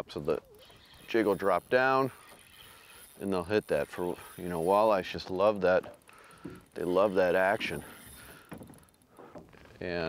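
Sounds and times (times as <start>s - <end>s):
water lapping: 0.0s - 9.8s.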